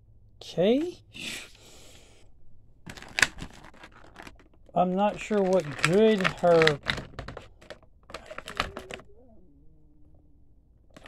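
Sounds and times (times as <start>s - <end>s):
plastic packaging crackling: 2.9s - 9.1s.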